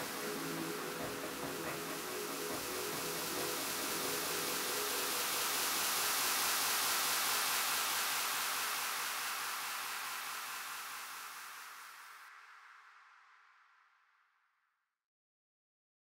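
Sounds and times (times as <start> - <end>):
synthesized hiss-like noise wash: 0.0 - 14.2.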